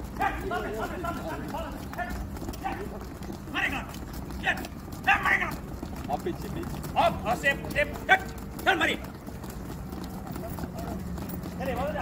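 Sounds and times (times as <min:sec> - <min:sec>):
men shouting: 0:00.1 - 0:05.7, 0:06.9 - 0:09.1.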